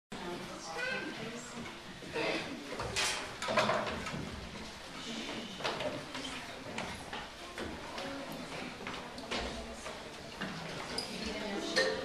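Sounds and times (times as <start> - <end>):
children's footsteps shuffling: 3.8 - 11.7.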